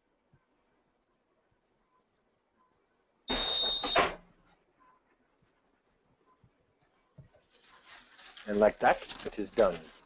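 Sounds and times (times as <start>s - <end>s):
steady high beep: 3.3s - 4.0s.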